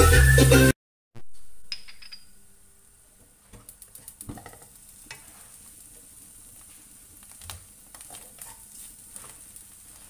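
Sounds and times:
vegetables sizzling in oil: 2.8 - 10.0.

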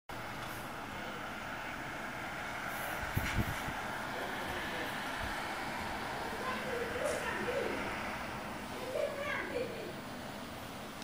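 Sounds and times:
steady background noise: 0.1 - 11.0.

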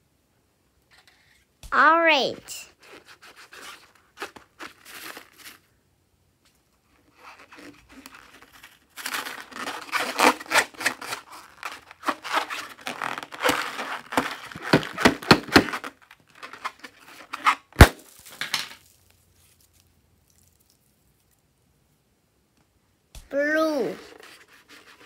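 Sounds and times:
rubber balloon squeaking: 9.1 - 16.7
balloon popping: 12.0 - 15.9, 17.8 - 18.3.

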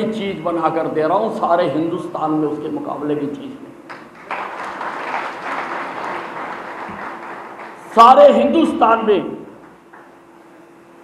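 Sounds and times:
audience applauding: 3.9 - 8.0.

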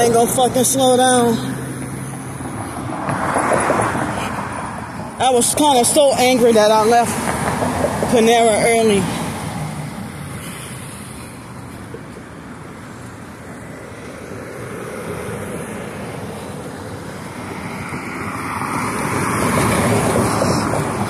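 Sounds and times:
road traffic passing: 0.0 - 21.0.

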